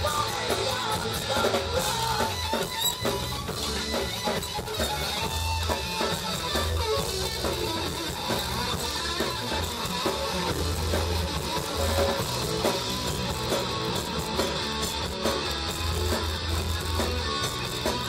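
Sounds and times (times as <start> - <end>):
bass line: 0.0 - 18.0
drums: 0.0 - 18.0
electric guitar: 0.0 - 18.0.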